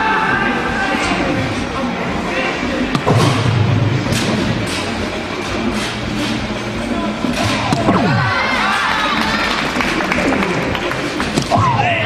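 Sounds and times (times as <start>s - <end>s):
crowd murmur in large hall: 0.0s - 12.0s.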